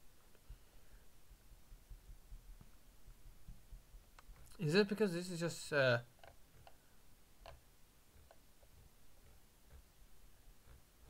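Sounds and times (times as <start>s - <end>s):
mouse scroll wheel clicks: 6.2s - 6.8s, 7.4s - 9.9s.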